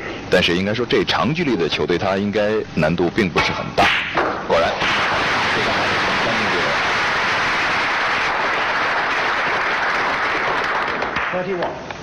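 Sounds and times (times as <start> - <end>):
steady hiss: 4.5 - 12.0.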